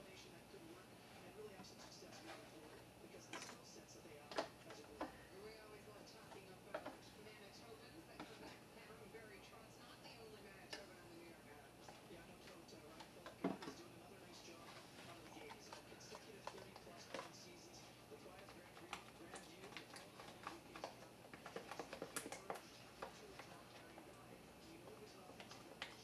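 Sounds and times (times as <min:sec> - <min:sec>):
spoon stirring in plastic cup: 0:00.0 - 0:26.0.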